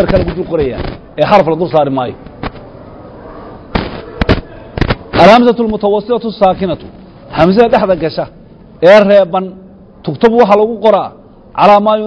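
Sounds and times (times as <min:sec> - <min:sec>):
faint background noise: 0:00.0 - 0:12.0
sharp pops: 0:03.7 - 0:05.0.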